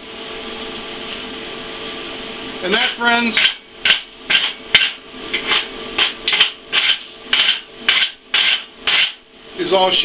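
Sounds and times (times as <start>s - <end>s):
hand tool striking metal: 3.4s - 9.2s.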